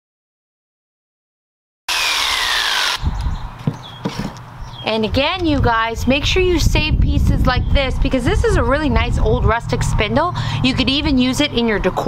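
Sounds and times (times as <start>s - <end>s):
electric jigsaw motor whine: 1.9s - 3.2s
wooden knocks: 3.6s - 4.4s.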